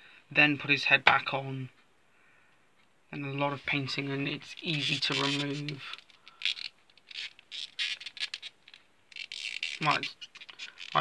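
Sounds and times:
plastic toy being handled: 3.8 - 11.0.

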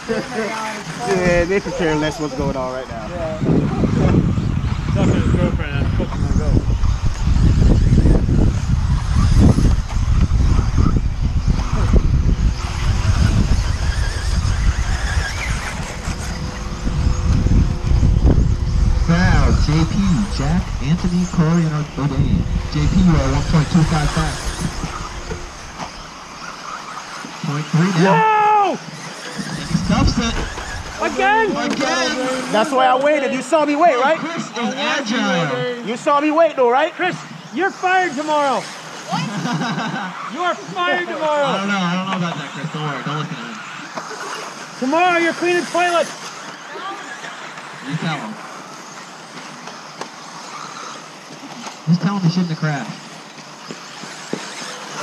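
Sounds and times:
radio-controlled cars hissing: 0.0 - 55.0
tyres on dirt: 3.2 - 33.5, 36.0 - 55.0.

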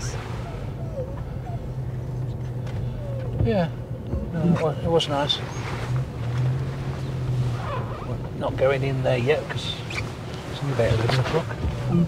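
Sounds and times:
road and tyre noise: 0.0 - 12.0
vehicle engine low drone: 0.0 - 12.0.

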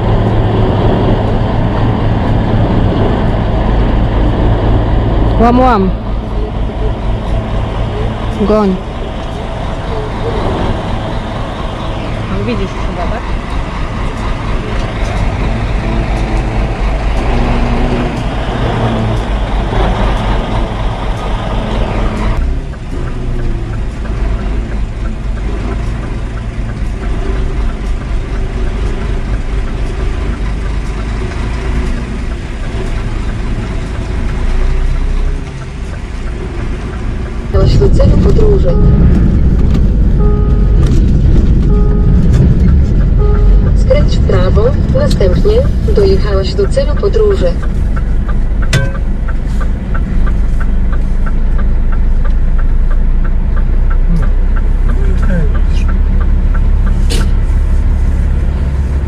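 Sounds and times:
diesel truck engine rumbling: 0.0 - 59.0.

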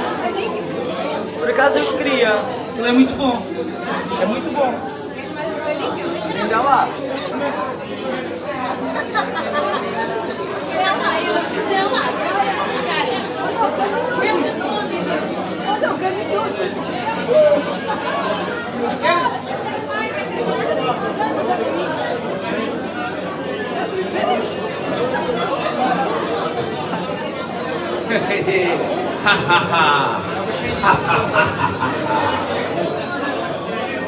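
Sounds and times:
crowd chatter in a hall: 0.0 - 34.0.

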